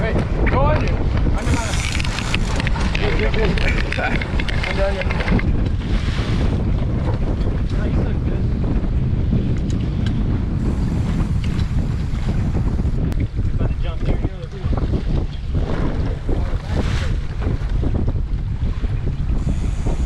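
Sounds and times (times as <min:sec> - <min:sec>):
waves washing against boat hull: 0:00.0 - 0:20.0
wind buffeting microphone: 0:00.0 - 0:20.0.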